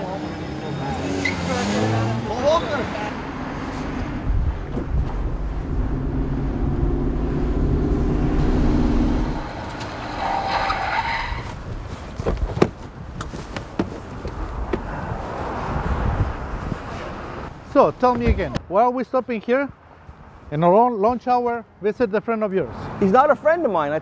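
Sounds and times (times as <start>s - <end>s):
tire squeal: 0.0s - 2.8s, 8.3s - 11.7s
car engine running hard: 4.9s - 10.5s.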